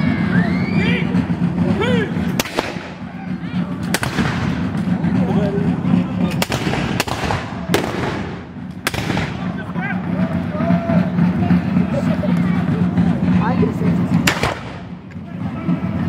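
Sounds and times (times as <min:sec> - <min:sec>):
musket shots with echo: 0:02.3 - 0:03.1, 0:03.8 - 0:04.8, 0:06.3 - 0:09.6, 0:14.2 - 0:15.0.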